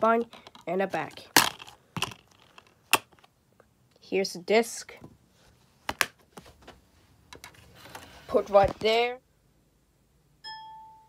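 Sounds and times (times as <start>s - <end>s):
electronic chime: 10.4s - 11.0s.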